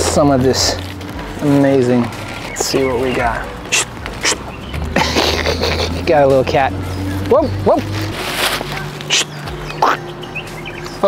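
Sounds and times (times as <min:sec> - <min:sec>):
paper wrapping rustling: 0:08.0 - 0:09.1.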